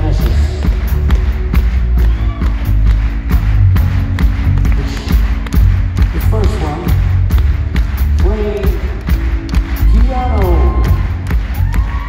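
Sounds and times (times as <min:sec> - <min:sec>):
heavy bass: 0:00.0 - 0:12.0
steady drum beat: 0:00.0 - 0:12.0.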